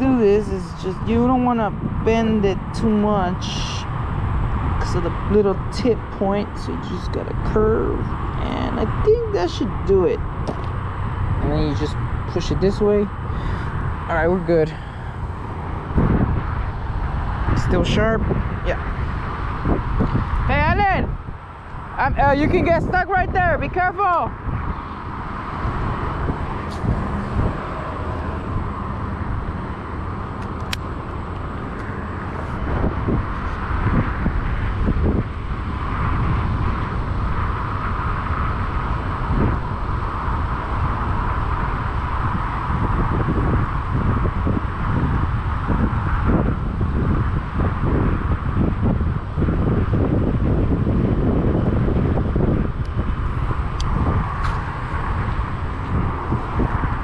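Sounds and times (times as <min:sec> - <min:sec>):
distant road traffic hum: 0:00.0 - 0:57.0
wind buffeting microphone: 0:00.0 - 0:57.0.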